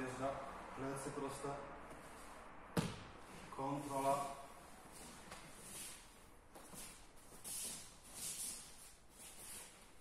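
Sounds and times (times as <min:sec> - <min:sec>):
bare feet on foam mats: 0:01.8 - 0:10.0.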